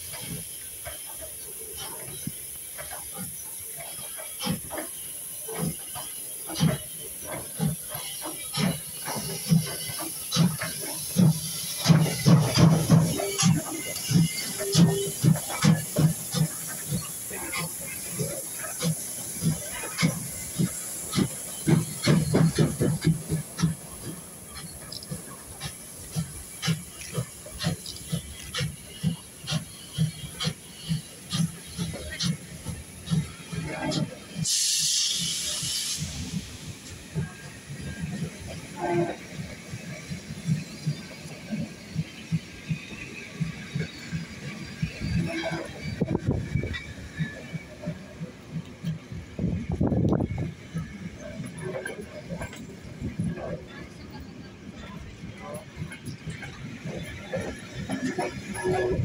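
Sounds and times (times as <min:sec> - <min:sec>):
train wheels thumping over rail joints: 0:00.0 - 0:34.5, 0:35.4 - 0:59.0
hiss of steam: 0:00.0 - 0:59.0
steam locomotive exhaust chuffs: 0:00.0 - 0:59.0.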